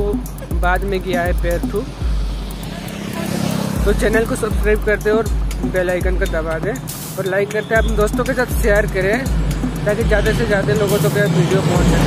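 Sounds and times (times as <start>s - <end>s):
motor vehicle passing: 1.8s - 4.5s.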